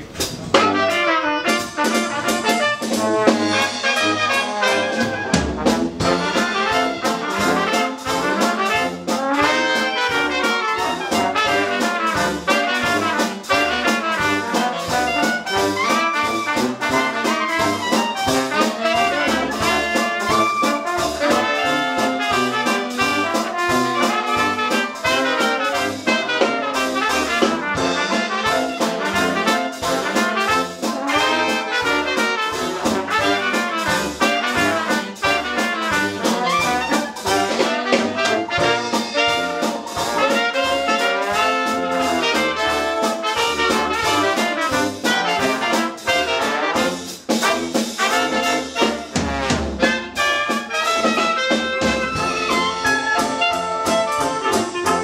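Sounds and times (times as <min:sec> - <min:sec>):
jazz band playing: 0:00.0 - 0:55.0.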